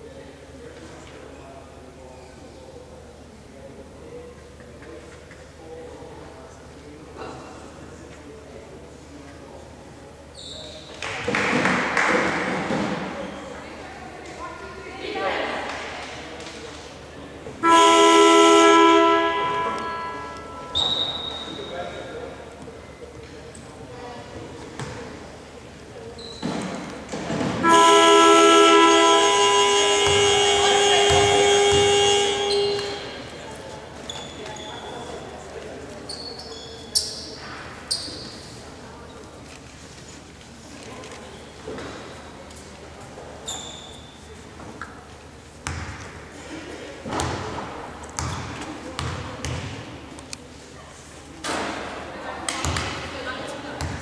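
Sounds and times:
arena game horn: 17.5s - 21.7s, 27.4s - 33.6s.

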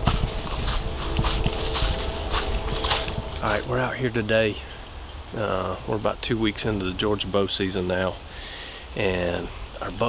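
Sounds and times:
footsteps through grass and leaves: 0.0s - 4.6s.

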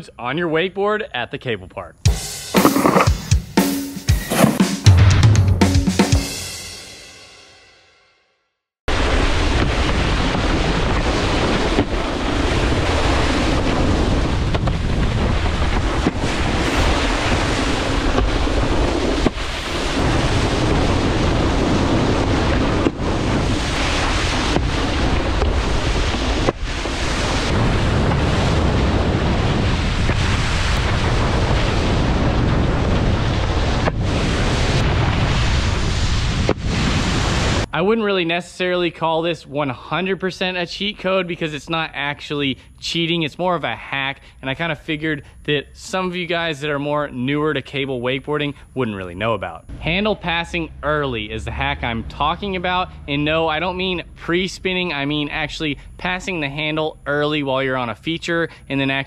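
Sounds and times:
wakeboard splashing across water: 2.6s - 3.2s, 4.3s - 4.7s.

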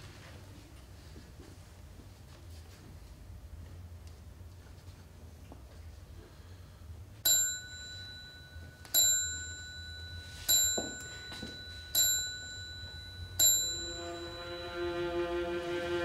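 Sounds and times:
small high-pitched bell ringing: 7.2s - 15.0s
bowed strings low notes: 13.9s - 16.0s.

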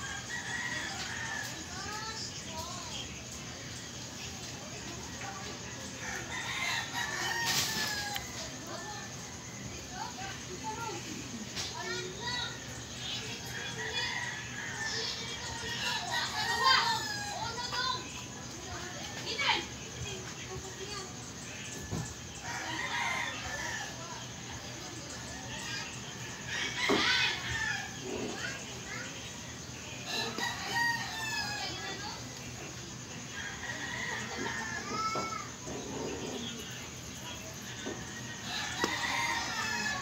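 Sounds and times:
rooster crowing: 5.9s - 8.4s, 30.1s - 32.0s, 33.3s - 35.4s, 38.0s - 40.0s.

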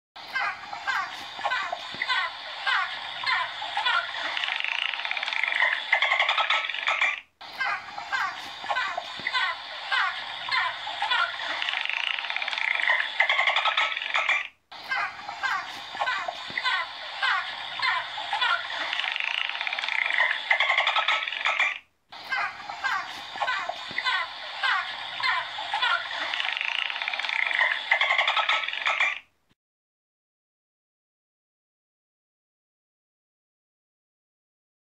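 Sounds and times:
dolphin clicking chatter: 1.7s - 7.2s, 8.4s - 14.5s, 16.0s - 21.8s, 23.0s - 29.2s.

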